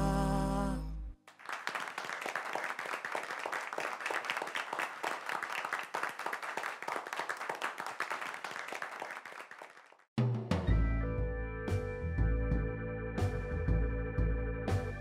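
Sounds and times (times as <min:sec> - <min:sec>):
audience applauding: 0:01.3 - 0:10.1.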